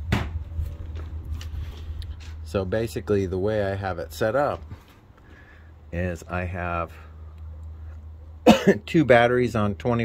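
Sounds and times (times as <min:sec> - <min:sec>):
man coughing: 0:08.4 - 0:08.9.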